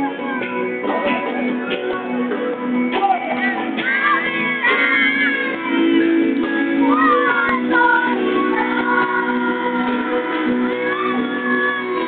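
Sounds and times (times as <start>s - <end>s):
electric guitar: 0.0s - 12.0s
pop-rock band playing live: 0.0s - 12.0s.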